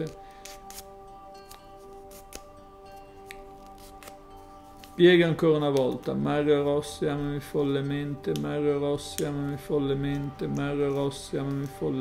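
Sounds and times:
paper crinkling: 0.0 - 6.2, 8.3 - 12.0
soft background music chords: 0.0 - 12.0.

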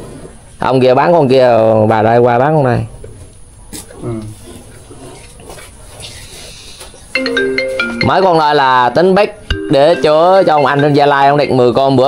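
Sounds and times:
phone ringtone melody: 7.2 - 12.0.

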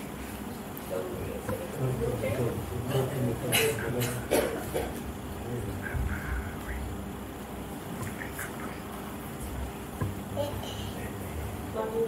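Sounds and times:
low buzzing hum: 0.0 - 12.0
murmured voices: 0.9 - 6.9.

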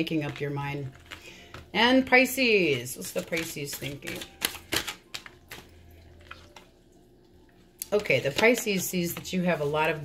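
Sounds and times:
cards being shuffled: 3.2 - 5.7.

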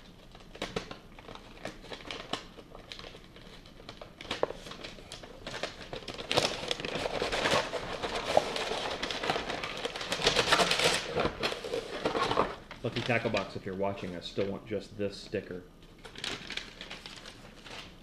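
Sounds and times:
stiff paper crinkling and rustling: 0.0 - 14.6, 15.9 - 18.0.

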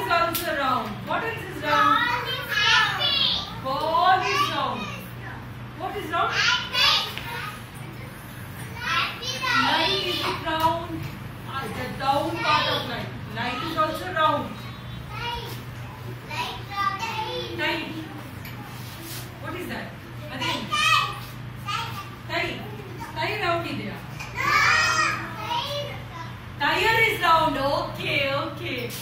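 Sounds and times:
young children calling out: 24.2 - 26.3.

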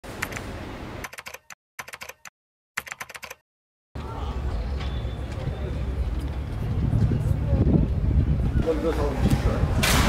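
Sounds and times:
keyboard key clicks: 1.0 - 3.4.

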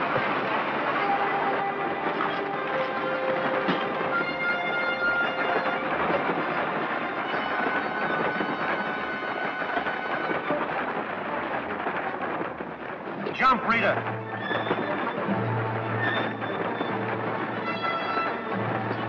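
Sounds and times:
steady rushing noise: 0.0 - 19.0
dramatic orchestral film music: 0.1 - 11.8, 13.1 - 19.0.

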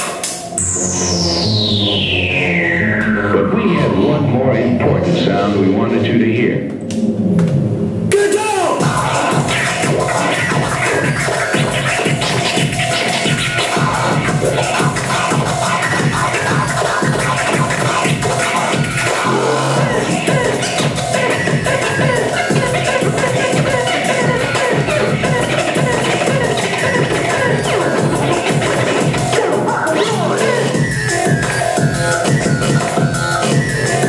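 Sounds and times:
dj scratching: 0.0 - 34.0
hip-hop beat: 0.0 - 34.0.

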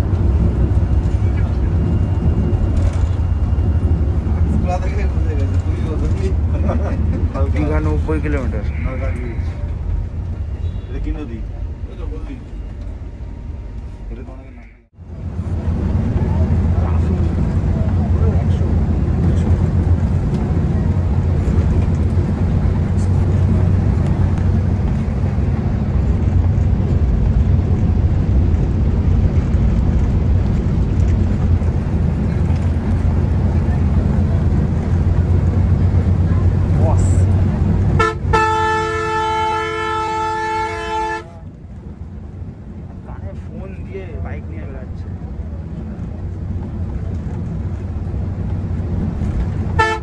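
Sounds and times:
coach engine and road drone: 0.0 - 50.0
horn blast: 37.9 - 41.4, 49.8 - 50.0.

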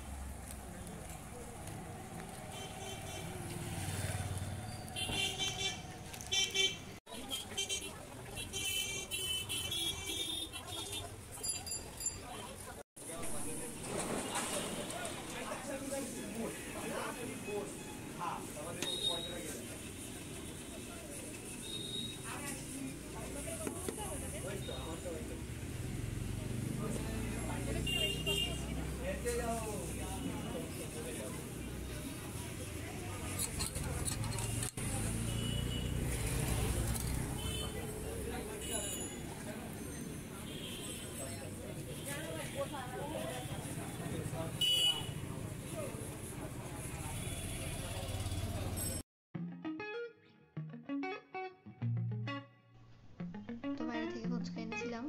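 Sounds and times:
motor vehicle passing: 0.0 - 5.0, 34.8 - 38.5.

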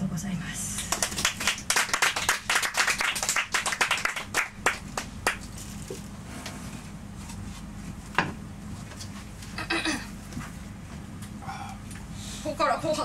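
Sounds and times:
audience clapping: 0.8 - 5.5.

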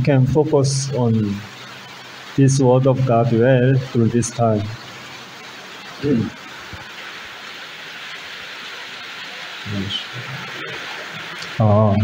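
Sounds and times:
low voice: 0.0 - 1.4, 2.4 - 4.7, 6.0 - 6.4, 9.7 - 12.0
rain falling: 0.0 - 12.0.

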